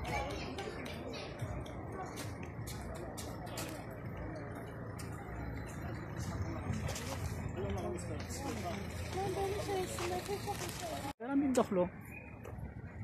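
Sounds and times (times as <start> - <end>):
people's voices: 0.0 - 12.8.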